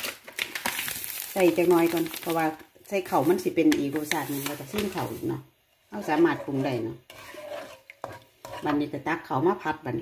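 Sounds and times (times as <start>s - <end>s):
woman speaking: 1.3s - 7.0s, 8.6s - 10.0s
spatula scraping in a pan: 3.1s - 9.3s.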